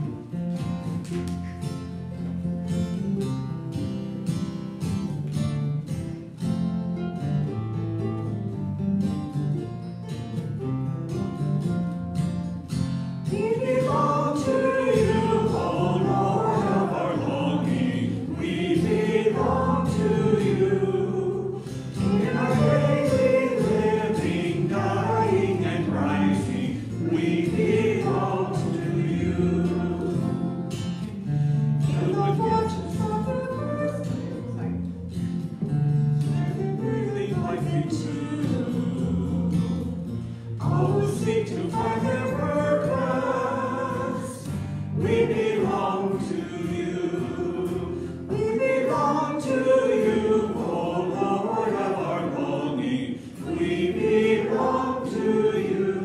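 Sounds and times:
strummed acoustic guitar: 0.0 - 56.0
voices singing: 13.2 - 31.2, 31.8 - 35.5, 36.3 - 56.0.

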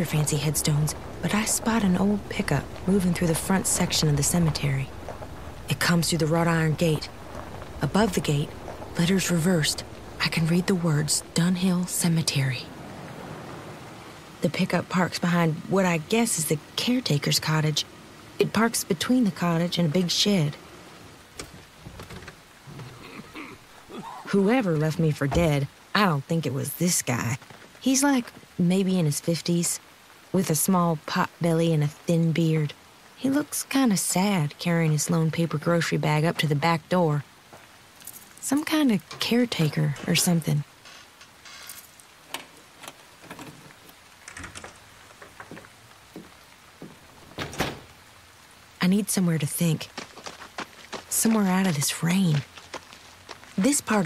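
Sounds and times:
steady rain falling: 0.0 - 54.0
door shutting: 39.9 - 43.6, 47.3 - 47.9.

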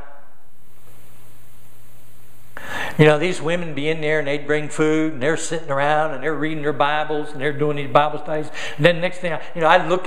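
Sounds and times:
faint background hiss: 0.0 - 10.0
steady low hum: 0.0 - 10.0.

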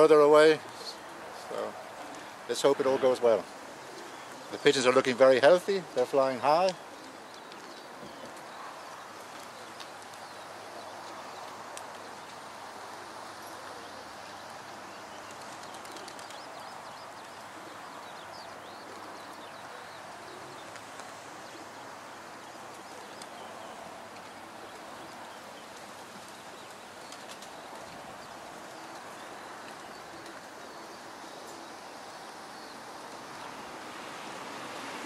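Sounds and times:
bird calls: 0.0 - 34.3
outdoor background noise: 0.0 - 35.0.

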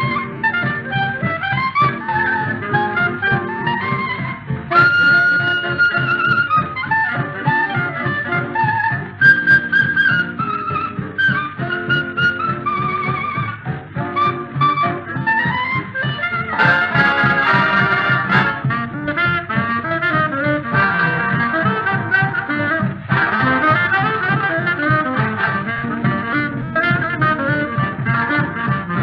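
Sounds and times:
boogie-woogie dance-band music: 0.0 - 29.0.

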